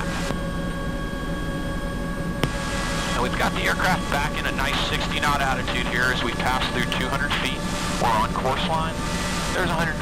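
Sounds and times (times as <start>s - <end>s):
helicopter rotor drone: 0.0s - 10.0s
turbine engine whine: 0.0s - 10.0s.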